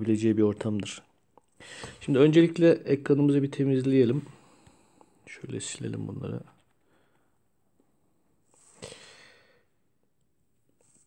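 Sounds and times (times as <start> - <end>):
breathy sigh: 8.6 - 9.7.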